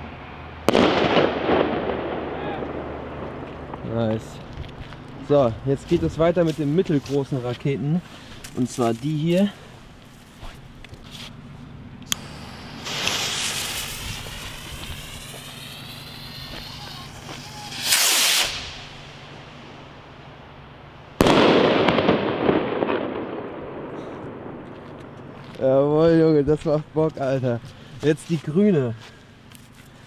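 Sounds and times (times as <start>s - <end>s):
firework bursting bang: 0.7s - 4.4s, 12.1s - 19.8s, 21.2s - 24.8s
fuse hissing: 12.0s - 19.7s
rocket launching rush: 12.1s - 19.8s, 21.2s - 24.6s.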